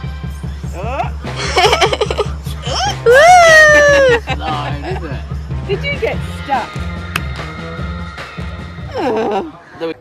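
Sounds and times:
background music with steady beat: 0.0 - 10.0
child squealing with delight: 2.8 - 4.2.

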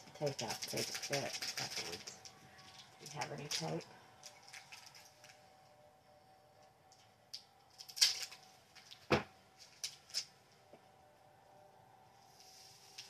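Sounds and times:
plastic bag rustling: 0.2 - 5.4.

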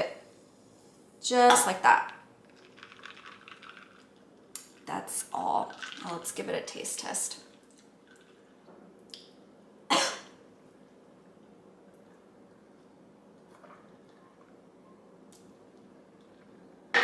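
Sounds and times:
woman coughing: 9.9 - 10.3.

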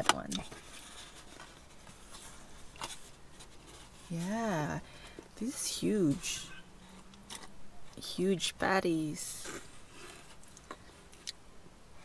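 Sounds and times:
cardboard box rustling: 0.4 - 7.5.

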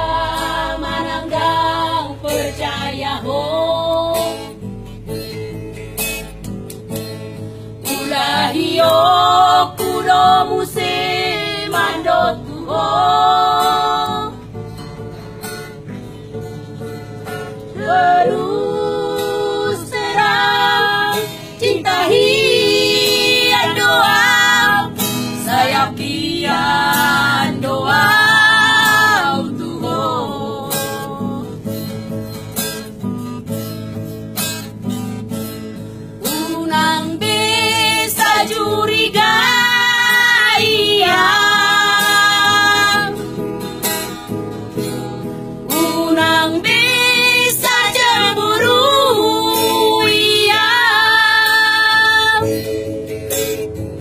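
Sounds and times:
women singing together: 0.0 - 4.6, 7.8 - 14.5, 17.7 - 31.7, 36.3 - 43.4, 45.6 - 53.7
acoustic guitar: 0.0 - 54.0.

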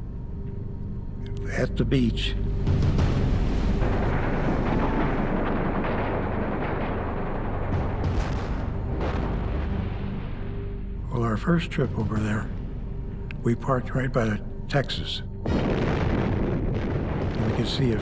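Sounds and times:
background music: 0.0 - 18.0
explosions: 2.6 - 10.9, 15.4 - 18.0
gunfire: 2.9 - 9.8, 15.5 - 18.0.

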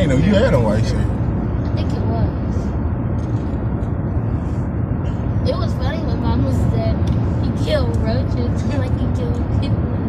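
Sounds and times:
road and engine rumble in car: 0.0 - 10.0
voices: 5.1 - 10.0.

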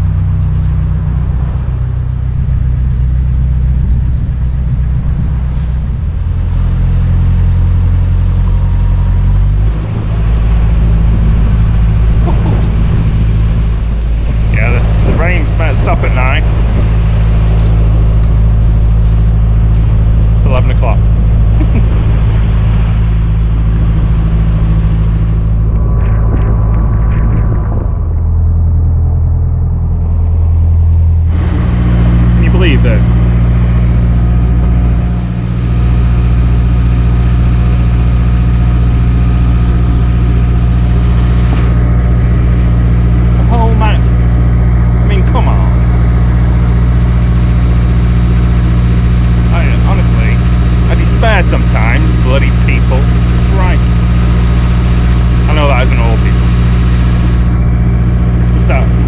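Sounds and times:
boat diesel engine running: 0.0 - 59.0.

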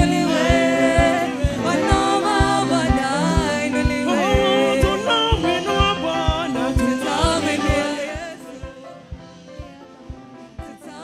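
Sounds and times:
woman singing into a microphone: 0.0 - 9.2, 10.5 - 11.0
backing voices singing: 0.0 - 11.0
band with drum beat: 0.0 - 11.0.

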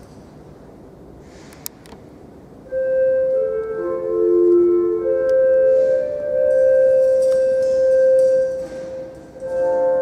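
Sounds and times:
church organ sustained chord: 2.7 - 10.0.

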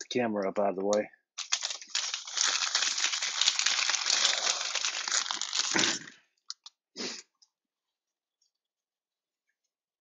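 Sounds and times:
plastic wrappers crinkling and tearing: 1.4 - 6.7.

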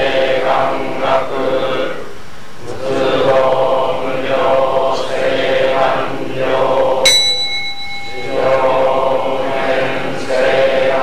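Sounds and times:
monotone chanting: 0.0 - 11.0
small temple bell ringing: 7.1 - 9.6.

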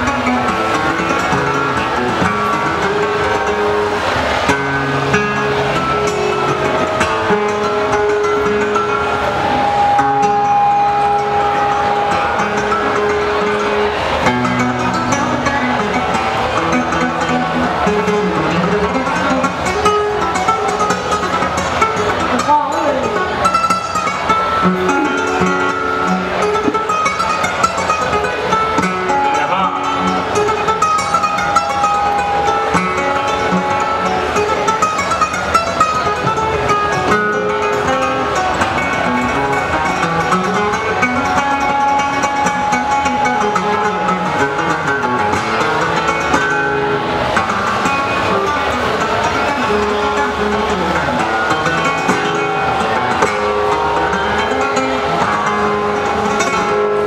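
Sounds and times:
flamenco guitar: 0.0 - 57.0.

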